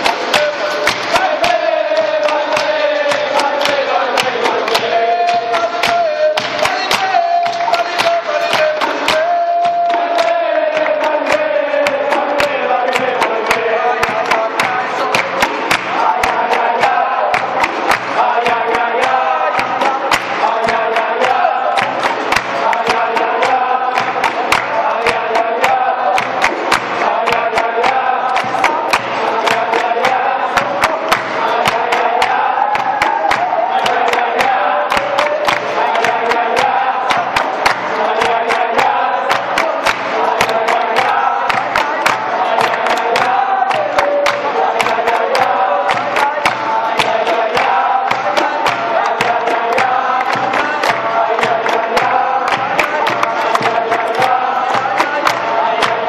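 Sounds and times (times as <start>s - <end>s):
berimbaus and pandeiro: 0.0s - 56.0s
group of voices chanting: 0.0s - 56.0s
handclaps: 0.0s - 56.0s.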